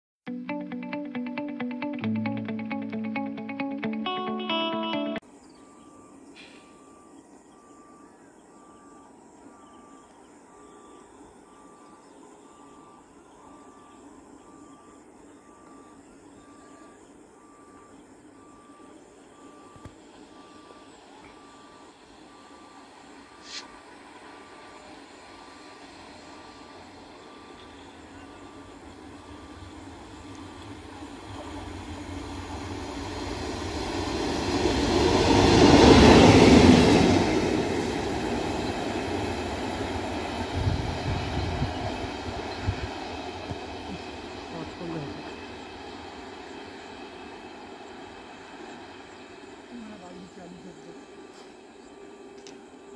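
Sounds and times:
electric locomotive passing: 0.3 - 52.9.

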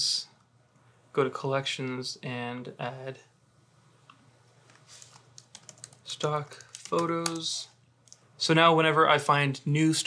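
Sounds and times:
typing on computer keyboard: 5.0 - 8.2.

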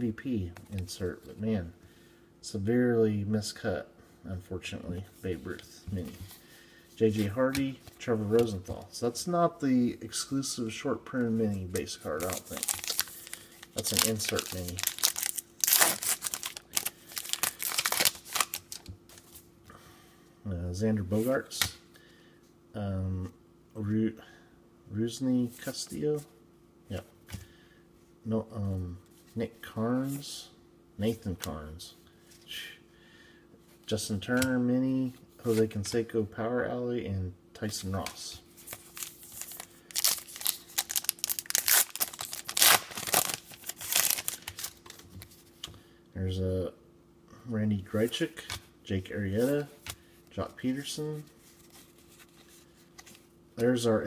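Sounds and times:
wrapper crinkling: 12.0 - 18.9, 38.6 - 45.0.

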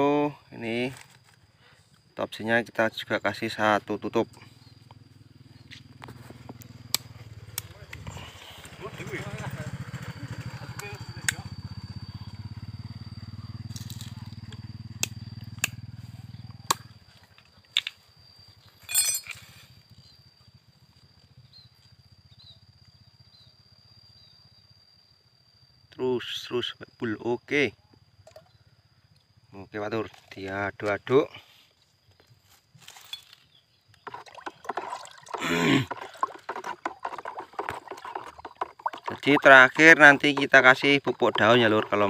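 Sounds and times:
plastic bottle rattle: 34.1 - 42.0.

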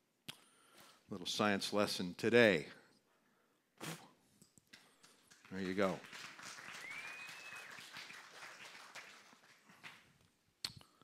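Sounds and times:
faint scattered applause: 5.0 - 10.2.

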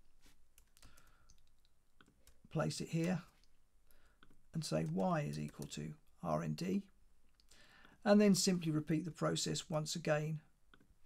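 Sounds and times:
keyboard and mouse clicks: 0.5 - 3.6, 4.2 - 5.8.

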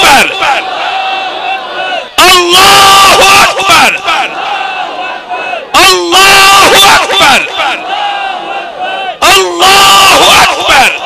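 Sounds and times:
crowd shouting in unison: 0.0 - 11.0.

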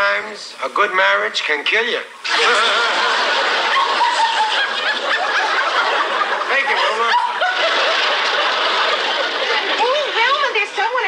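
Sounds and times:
audience laughing: 2.2 - 11.0.

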